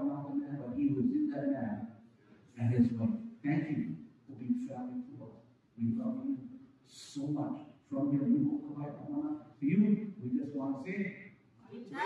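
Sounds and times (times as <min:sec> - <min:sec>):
person talking: 0:00.0 - 0:01.8, 0:02.6 - 0:12.0.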